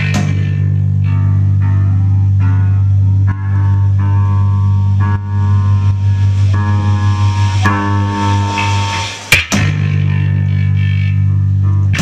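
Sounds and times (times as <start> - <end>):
low drone: 0.0 - 12.0
noise rock band playing live: 0.0 - 12.0.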